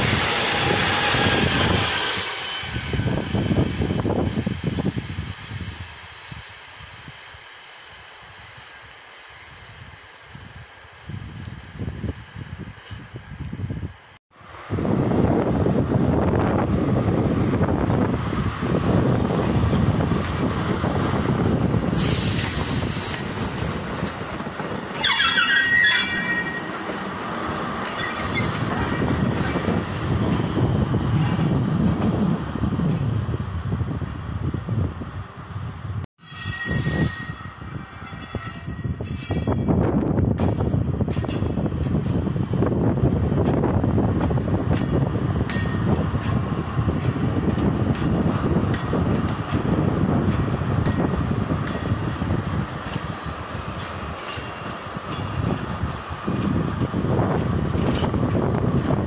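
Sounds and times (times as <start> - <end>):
high wheel squeal: 0.0 - 4.0, 22.0 - 27.1, 27.8 - 29.1, 36.2 - 39.8
diesel locomotives running: 0.0 - 59.0
wagon wheels rolling on rails: 43.3 - 59.0.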